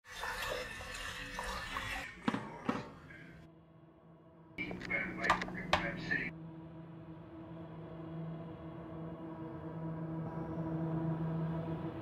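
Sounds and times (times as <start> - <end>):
water pouring into kettle: 0.0 - 2.6.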